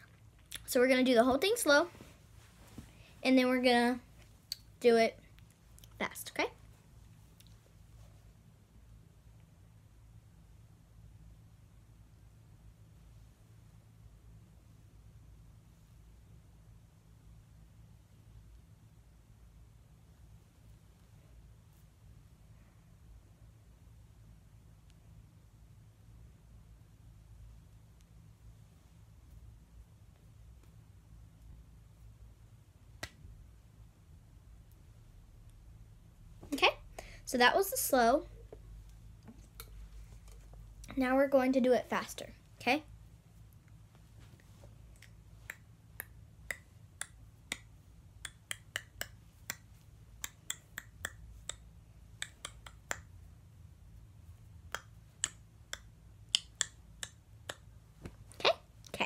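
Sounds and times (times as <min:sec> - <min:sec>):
low steady hum: 0:00.0 - 0:59.0
fingers clicking and tapping: 0:46.5 - 0:53.1.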